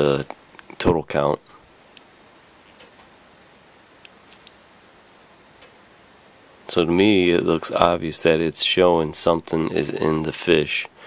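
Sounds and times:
low steady hiss: 0:00.0 - 0:11.0.

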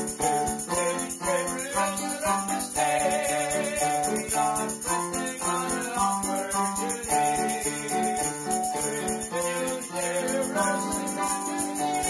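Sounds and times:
electric keyboard: 0:00.0 - 0:12.0
tambourine shaking: 0:00.0 - 0:12.0
man singing: 0:00.1 - 0:12.0.

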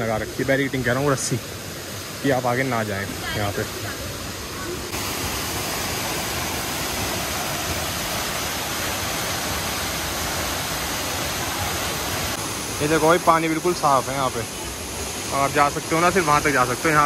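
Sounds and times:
waterfall rushing into pool: 0:00.0 - 0:17.0.

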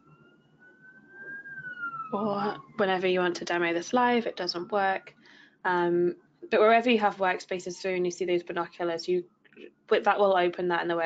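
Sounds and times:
distant siren wailing: 0:00.0 - 0:11.0.

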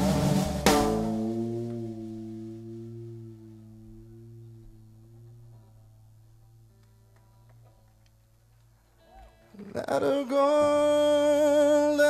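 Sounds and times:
electric guitar chord ringing: 0:00.7 - 0:07.5.

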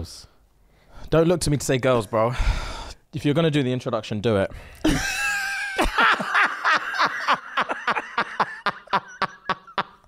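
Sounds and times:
men laughing hard: 0:04.9 - 0:10.0.

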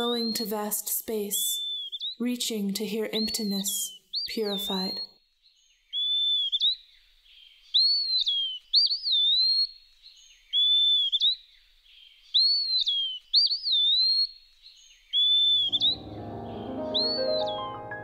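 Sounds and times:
whistled bird call: 0:05.9 - 0:06.8, 0:07.7 - 0:09.8, 0:10.5 - 0:11.4, 0:12.3 - 0:14.4, 0:15.1 - 0:17.9.

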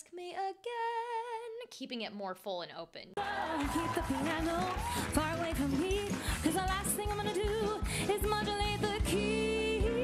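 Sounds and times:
woman singing with vibrato: 0:00.0 - 0:01.7, 0:03.2 - 0:10.0.

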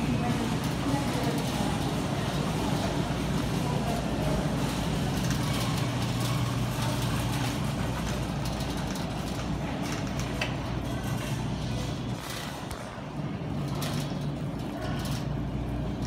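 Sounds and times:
room noise: 0:00.0 - 0:16.0.

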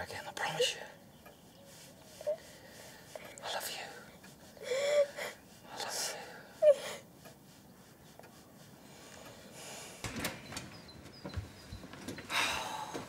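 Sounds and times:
gasping breaths: 0:04.4 - 0:07.1.

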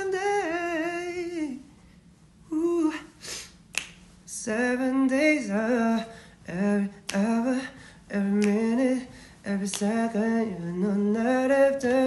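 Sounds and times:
man singing unaccompanied: 0:00.0 - 0:01.7, 0:04.3 - 0:12.0
breath: 0:06.1 - 0:06.4, 0:07.8 - 0:08.0, 0:09.1 - 0:09.4.

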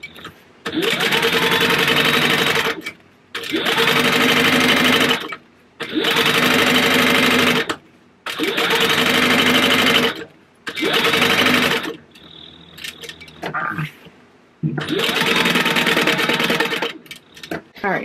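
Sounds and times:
sewing machine motor whirring: 0:00.2 - 0:13.2, 0:14.8 - 0:17.6.

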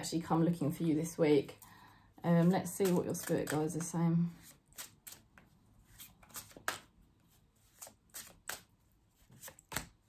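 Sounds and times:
cards shuffled by hand: 0:02.4 - 0:06.9, 0:07.6 - 0:10.0.

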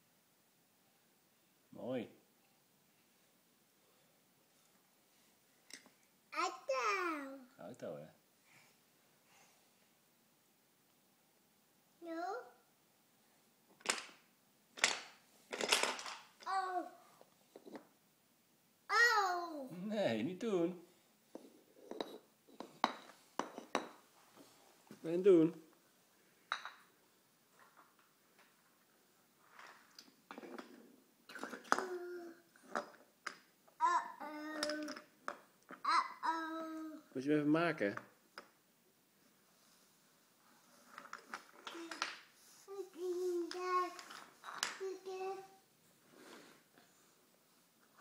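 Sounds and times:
toddler making vocal sounds: 0:06.4 - 0:07.5, 0:12.0 - 0:12.6, 0:16.4 - 0:17.1, 0:18.9 - 0:19.8, 0:31.5 - 0:32.6, 0:33.8 - 0:35.0, 0:35.8 - 0:37.2, 0:42.7 - 0:44.1, 0:44.8 - 0:45.6
wooden toy train track clacking: 0:40.9 - 0:42.2, 0:43.4 - 0:45.1.

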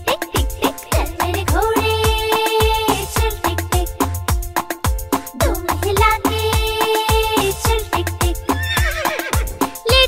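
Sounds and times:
children's song instrumental: 0:00.0 - 0:10.0
steady drum beat: 0:00.4 - 0:10.0
horse whinny sound effect: 0:08.5 - 0:09.5.

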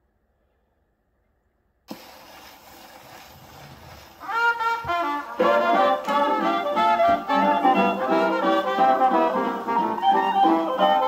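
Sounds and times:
gramophone record surface hiss: 0:01.9 - 0:11.0.

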